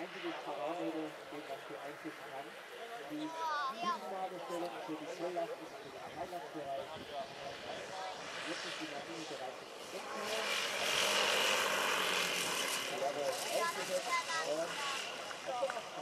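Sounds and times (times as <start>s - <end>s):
people talking: 0.0s - 11.1s, 12.8s - 16.0s
model airplane propellers: 0.0s - 16.0s.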